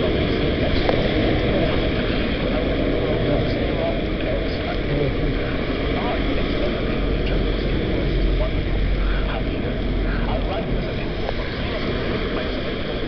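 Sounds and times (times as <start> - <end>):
tyres hissing on wet road: 0.0 - 13.0
wind noise on microphone: 0.0 - 13.0.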